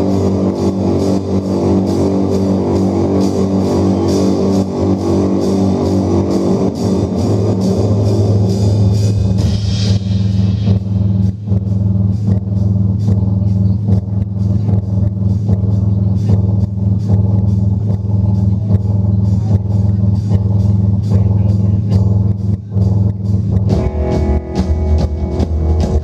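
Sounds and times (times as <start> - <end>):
drum and cymbal hits: 0.0 - 26.0
live rock music: 0.0 - 26.0.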